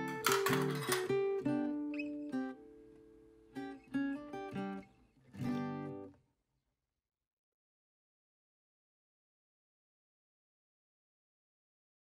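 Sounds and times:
acoustic guitar music: 0.0s - 6.2s.

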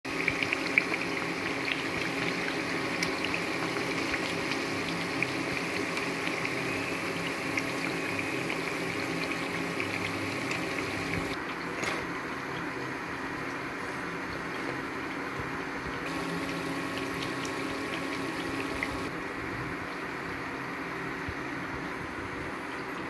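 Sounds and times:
deep-frying sizzle with pops: 0.1s - 23.0s.

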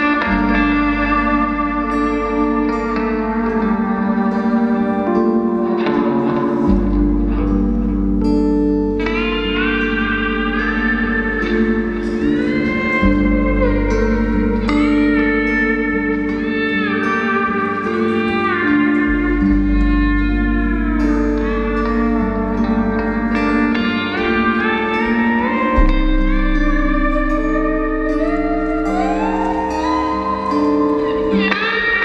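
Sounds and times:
lap steel guitar sliding melody: 0.0s - 32.0s
live rock band: 0.0s - 32.0s.

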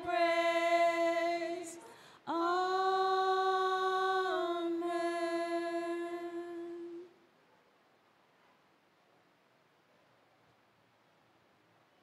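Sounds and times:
women singing a cappella: 0.0s - 7.2s.

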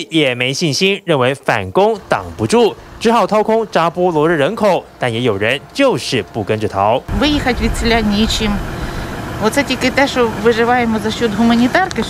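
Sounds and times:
steady low rumble: 2.0s - 12.0s
woman speaking: 7.1s - 12.0s.

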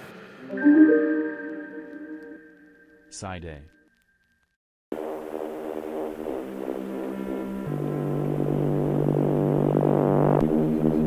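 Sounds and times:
electronic music synthesizer chords: 0.4s - 2.8s.

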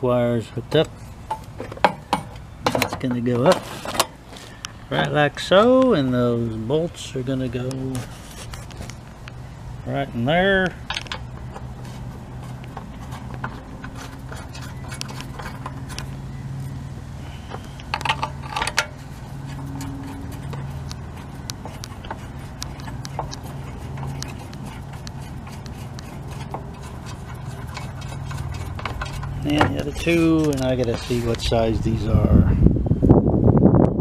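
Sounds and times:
steady low hum: 0.0s - 34.0s
metal rattling: 10.8s - 16.8s, 17.4s - 31.8s.

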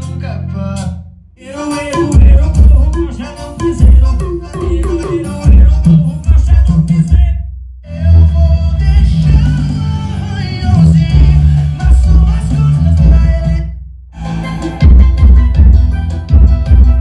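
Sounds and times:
bass-heavy music with vocals: 0.0s - 17.0s.

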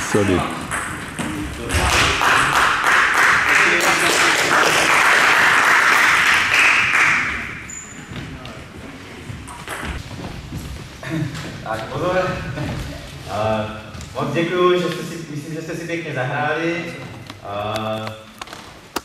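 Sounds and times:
crowd applauding: 1.8s - 7.6s.

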